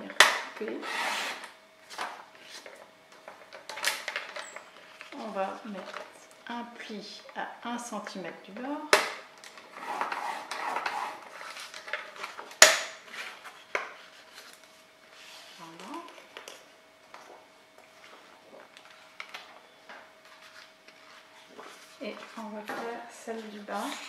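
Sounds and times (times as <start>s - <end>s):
paper trimmer blade scraping card: 0.8s - 1.5s.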